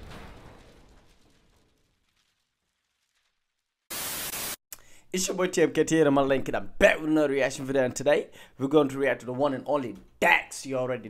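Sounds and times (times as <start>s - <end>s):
static hiss burst: 3.9s - 4.6s.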